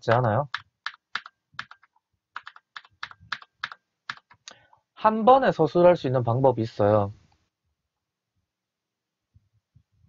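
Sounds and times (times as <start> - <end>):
keyboard keys clicking: 0.1 - 4.4.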